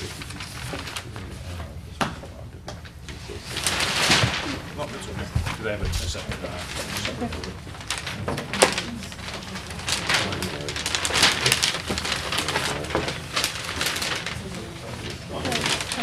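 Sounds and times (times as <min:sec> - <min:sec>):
low voices talking: 0:00.0 - 0:16.0
paper rustling: 0:00.0 - 0:16.0.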